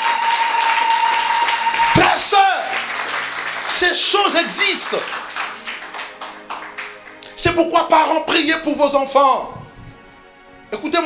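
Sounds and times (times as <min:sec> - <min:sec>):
hand claps: 0:00.0 - 0:07.4
faint background music: 0:01.8 - 0:11.0.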